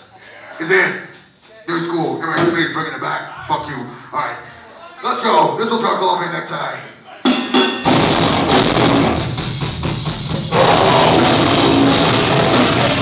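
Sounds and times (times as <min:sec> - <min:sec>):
drums: 0:00.0 - 0:03.4, 0:07.1 - 0:13.0
heavy rock band playing: 0:07.3 - 0:13.0
electric guitar: 0:07.8 - 0:13.0.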